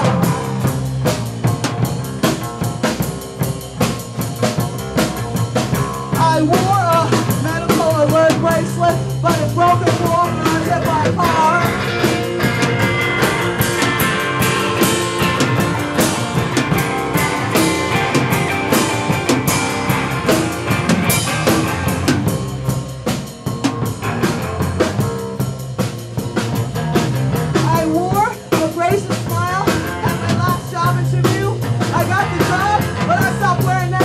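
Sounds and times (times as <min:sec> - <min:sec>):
drum kit with cymbals: 0:00.0 - 0:34.0
electric guitar: 0:00.0 - 0:34.0.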